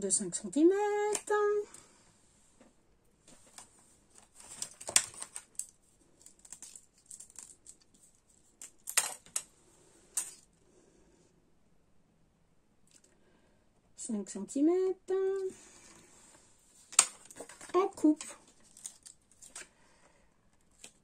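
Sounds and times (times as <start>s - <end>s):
paper rustling: 3.2s - 9.4s, 16.7s - 19.7s.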